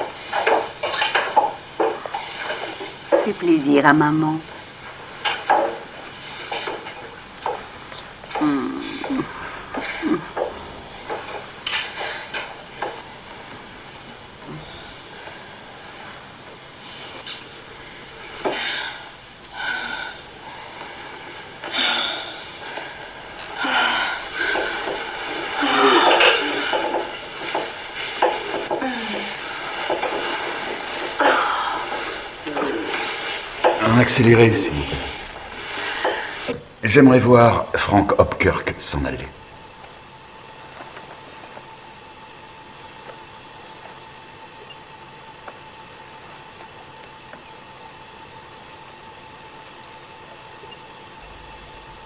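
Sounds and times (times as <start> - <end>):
voices: 3.1 - 4.6, 31.2 - 52.0.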